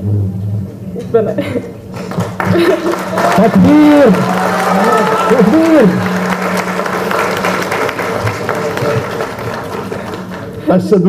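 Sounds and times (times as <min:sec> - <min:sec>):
steady low hum: 0:00.0 - 0:11.0
audience applauding: 0:01.9 - 0:10.9.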